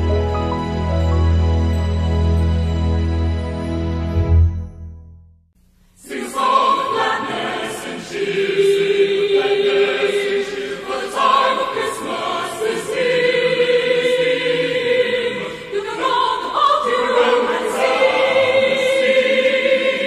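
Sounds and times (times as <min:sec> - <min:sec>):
choir singing christmas song: 0:06.0 - 0:20.0.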